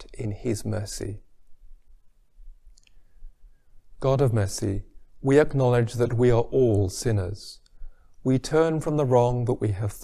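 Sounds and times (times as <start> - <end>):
man's voice: 0.0 - 1.3, 4.0 - 7.6, 8.3 - 10.0.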